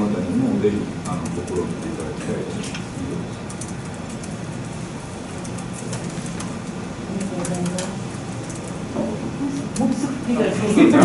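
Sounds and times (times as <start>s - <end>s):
steady low hum: 0.0s - 11.0s
faint clicks and rustles: 1.0s - 10.2s.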